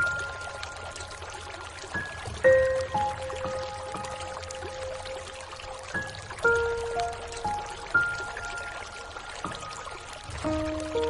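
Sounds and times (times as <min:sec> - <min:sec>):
rain hissing: 0:00.0 - 0:11.0
slow piano music: 0:00.0 - 0:11.0.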